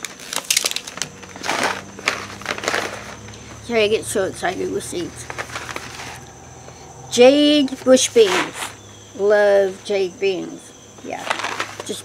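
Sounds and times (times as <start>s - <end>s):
seed packets rustling and crinkling: 0.0s - 6.8s, 7.6s - 8.9s, 9.6s - 12.0s.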